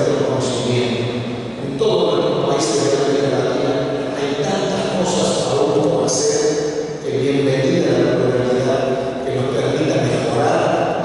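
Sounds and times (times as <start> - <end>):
man giving a speech into microphone: 0.0 - 11.0.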